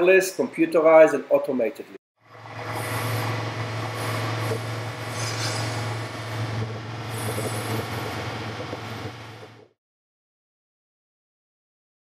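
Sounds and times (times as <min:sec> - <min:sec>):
electric pump motor humming: 0:02.2 - 0:09.7.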